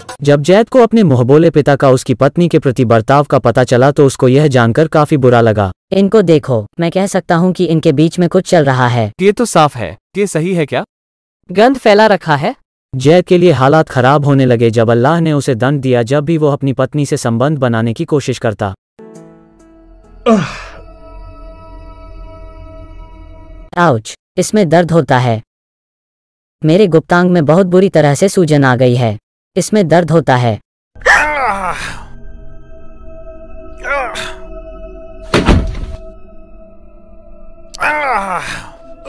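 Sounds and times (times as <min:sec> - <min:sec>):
ambient music chords: 0:19.0 - 0:23.7, 0:31.0 - 0:39.0
breathy groan of pain: 0:20.2 - 0:20.8, 0:31.0 - 0:32.2, 0:33.7 - 0:34.9, 0:37.6 - 0:39.0
heavy thud: 0:35.2 - 0:36.2.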